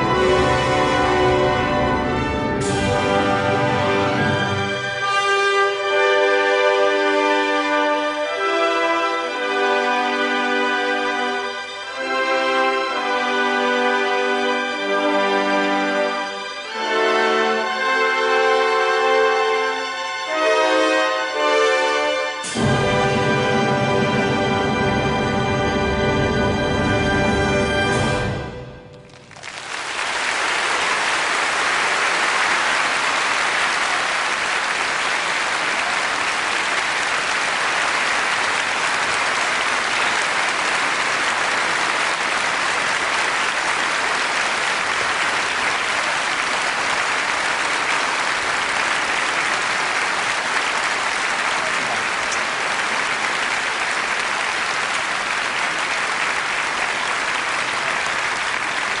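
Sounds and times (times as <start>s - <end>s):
audience applauding: 28.9s - 59.0s.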